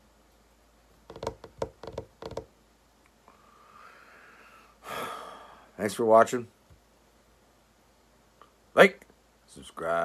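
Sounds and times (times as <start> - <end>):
knocks on a hard surface: 1.1 - 2.5.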